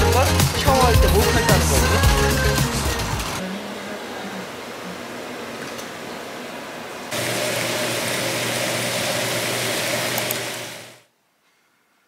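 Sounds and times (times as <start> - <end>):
background music: 0.0 - 3.4.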